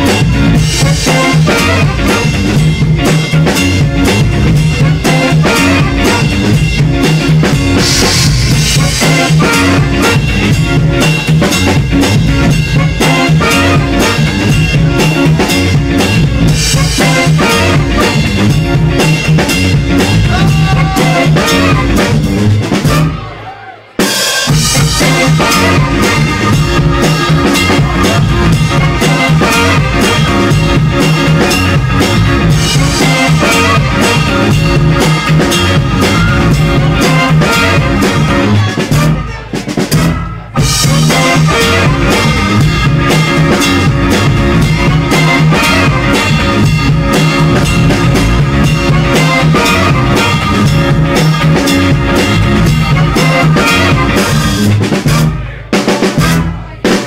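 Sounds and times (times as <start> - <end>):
drum kit groove: 0.0 - 57.0
funk band playing: 0.0 - 57.0.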